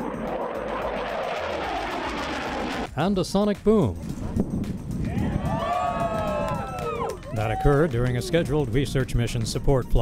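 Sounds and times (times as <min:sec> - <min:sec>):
jet flyover rushing: 0:00.0 - 0:03.0.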